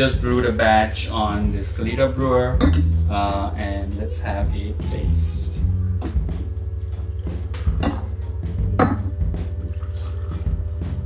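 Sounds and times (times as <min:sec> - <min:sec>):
background music with bass: 0:00.0 - 0:11.0
glass clinking: 0:08.8 - 0:10.0
coffee pouring into glass cups: 0:08.8 - 0:10.6.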